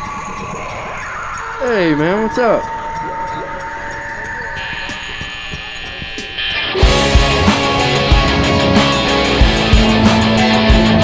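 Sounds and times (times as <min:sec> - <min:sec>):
sustained guitar notes: 0:00.0 - 0:11.0
rock band playing loudly: 0:06.0 - 0:11.0.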